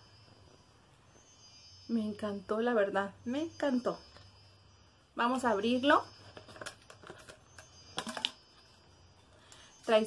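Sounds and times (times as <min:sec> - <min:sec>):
plastic lid knocking and scraping: 0:06.2 - 0:08.4
plastic bottle clicking and rustling: 0:06.2 - 0:08.7.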